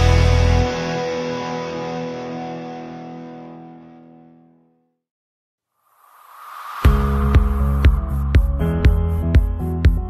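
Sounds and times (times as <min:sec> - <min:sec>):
distorted electric guitar chord: 0:00.0 - 0:04.6.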